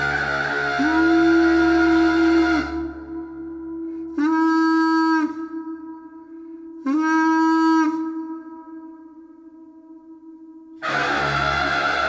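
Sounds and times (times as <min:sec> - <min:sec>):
breathy wind instrument sound: 0:00.0 - 0:12.0
wind instrument long notes: 0:00.0 - 0:12.0.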